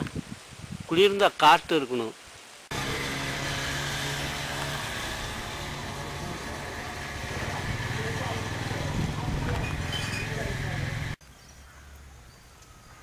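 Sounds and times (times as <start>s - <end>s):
steady engine hum: 2.7s - 11.2s.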